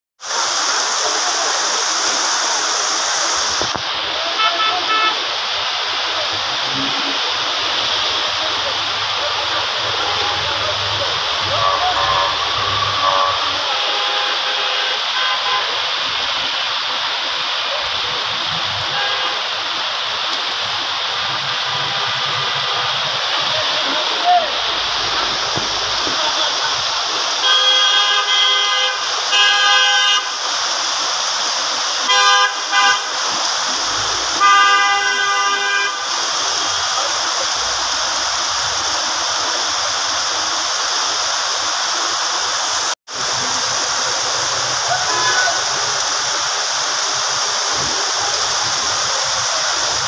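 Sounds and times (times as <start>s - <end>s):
heavy rain on a street: 0.2s - 50.0s
vehicle horn toots: 4.3s - 5.2s, 9.9s - 15.8s, 18.9s - 19.4s, 27.4s - 30.4s, 32.1s - 33.3s, 34.3s - 36.1s, 44.9s - 45.8s.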